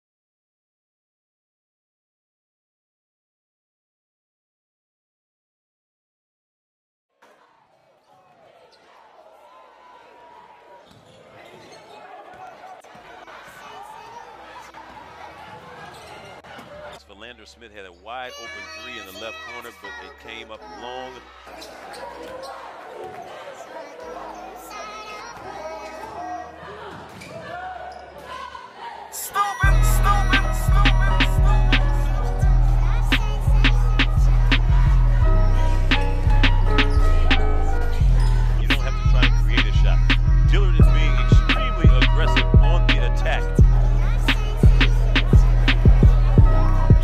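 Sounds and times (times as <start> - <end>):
crowd chatter: 7.2 - 47.0
shoe squeaks: 10.8 - 12.5, 15.6 - 17.1, 21.5 - 23.3, 36.6 - 39.0.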